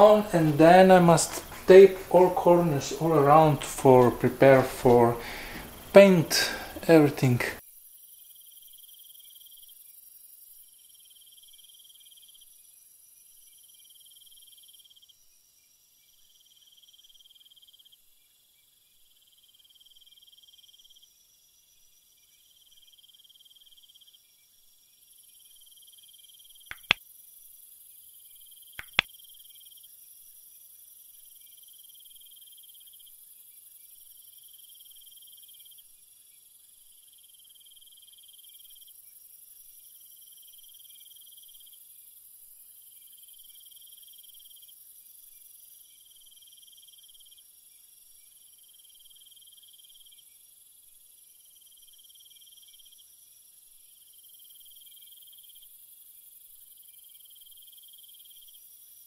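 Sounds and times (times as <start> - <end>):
steady high hiss: 0.0 - 7.6
crickets chirping: 0.0 - 59.0
sharp clicks: 26.7 - 27.0, 28.8 - 29.1.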